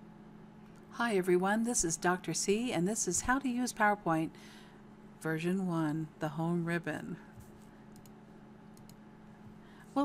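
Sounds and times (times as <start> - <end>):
steady low hum: 0.0 - 10.0
computer mouse clicks: 7.9 - 8.2, 8.8 - 9.0.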